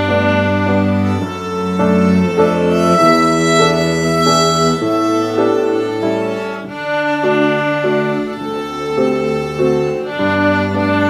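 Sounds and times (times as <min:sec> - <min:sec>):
violin duet playing waltz: 0:00.0 - 0:11.0
low held note: 0:01.8 - 0:06.6.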